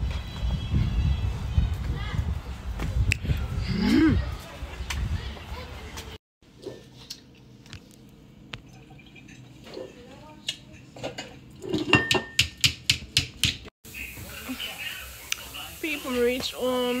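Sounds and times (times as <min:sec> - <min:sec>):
glass being tapped: 0:12.0 - 0:12.6.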